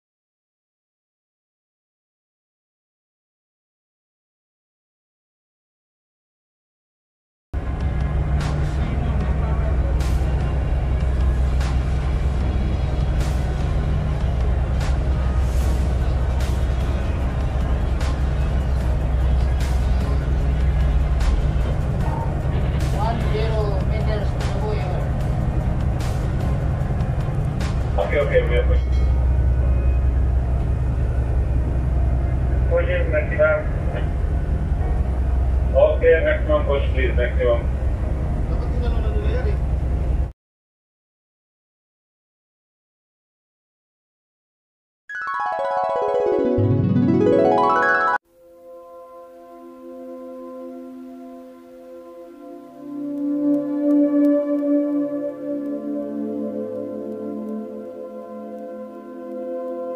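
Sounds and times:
ship engines droning: 0:07.6 - 0:40.3, 0:52.2 - 0:59.9.

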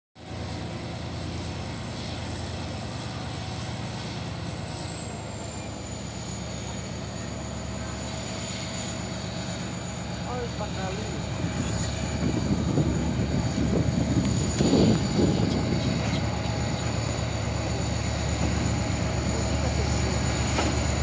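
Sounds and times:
diesel locomotive engine rumbling: 0:00.2 - 0:21.0.

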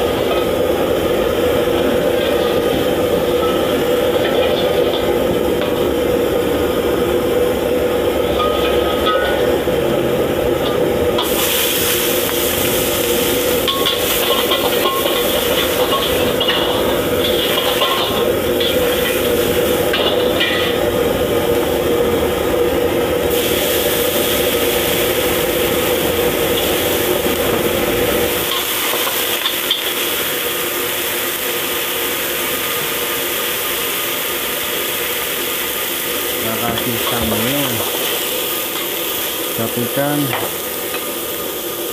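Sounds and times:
gas burner rumble: 0:00.0 - 0:41.9
vegetables sizzling in oil: 0:00.0 - 0:41.9.

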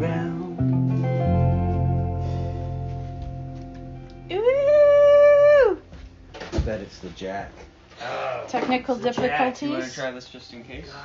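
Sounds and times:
electric guitar chord ringing: 0:00.0 - 0:06.5
dog howling: 0:04.4 - 0:05.8.

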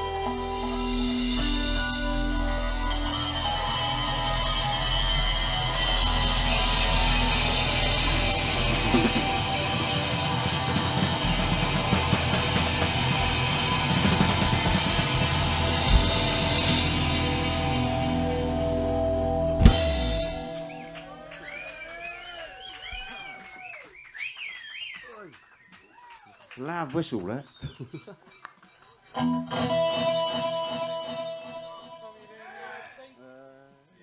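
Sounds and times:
live rock band playing: 0:00.0 - 0:21.9, 0:29.2 - 0:32.2.

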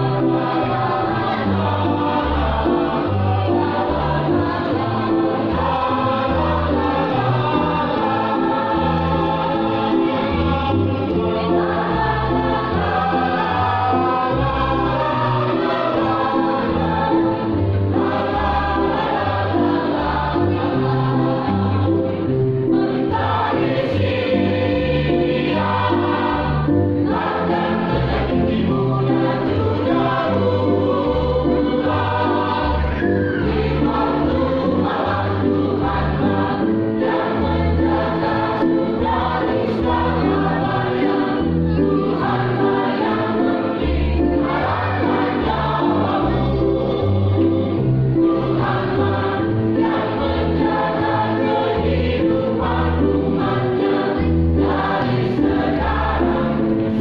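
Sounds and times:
choir singing in harmony: 0:00.0 - 0:57.0.

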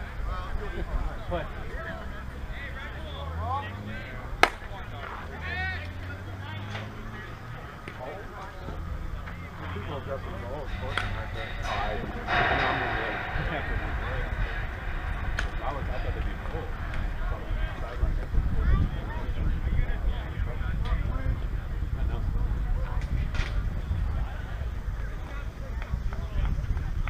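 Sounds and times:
distant voices and shouts: 0:00.0 - 0:27.0
bat striking softball: 0:04.4 - 0:05.2, 0:10.8 - 0:18.3.

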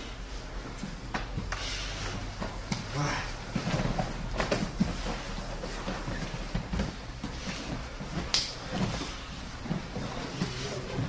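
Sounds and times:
bodies thumping and scuffing on mat: 0:00.5 - 0:11.0.

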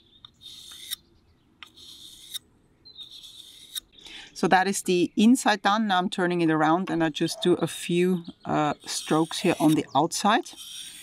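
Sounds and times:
blade rubbing on sharpening stone: 0:00.4 - 0:01.0, 0:01.6 - 0:02.4, 0:03.0 - 0:03.8, 0:08.9 - 0:09.9, 0:10.5 - 0:11.0.

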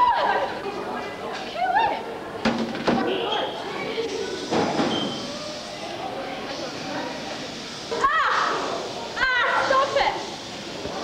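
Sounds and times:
voices in echoing hall: 0:00.0 - 0:11.0.

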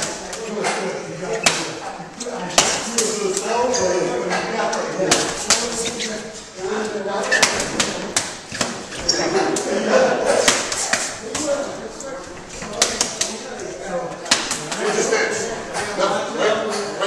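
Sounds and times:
hands striking padded gloves: 0:14.3 - 0:14.8.

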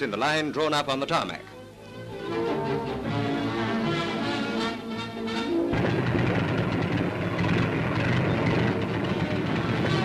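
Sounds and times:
piston aero engines droning: 0:04.1 - 0:10.0.

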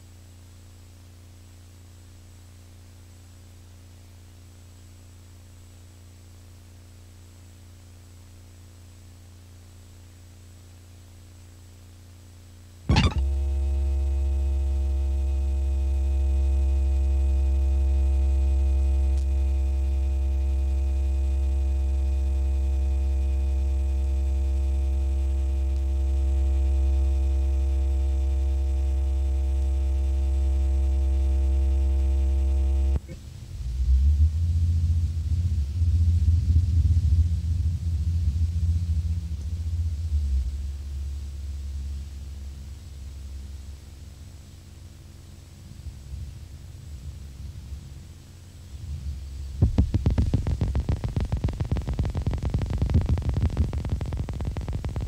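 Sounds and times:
wavering low rumble: 0:33.4 - 0:42.0, 0:48.8 - 0:55.0
low electronic drone: 0:49.6 - 0:55.0.

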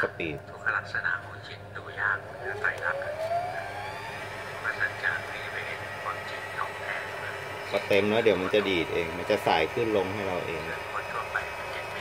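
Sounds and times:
sewing machine motor whine: 0:02.3 - 0:12.0.

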